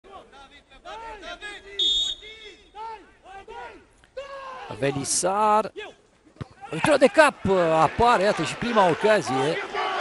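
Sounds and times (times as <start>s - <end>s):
referee's whistle blast: 1.8s - 2.4s
voices shouting: 6.6s - 10.0s.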